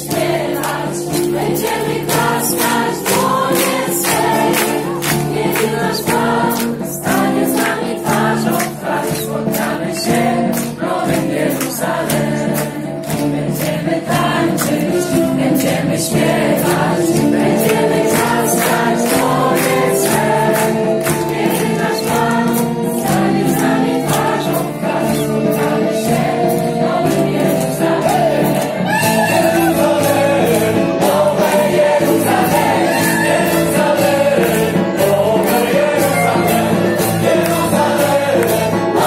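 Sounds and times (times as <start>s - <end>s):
many voices singing: 0.0s - 39.0s
live band playing: 0.2s - 39.0s.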